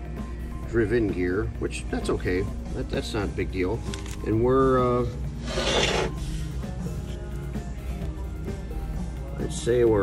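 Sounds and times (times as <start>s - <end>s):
rubbing rasping sound: 5.4s - 6.2s.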